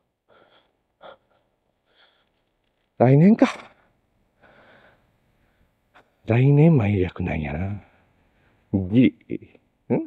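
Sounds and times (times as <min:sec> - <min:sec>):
faint breath: 0:00.3 - 0:02.5, 0:04.4 - 0:05.8.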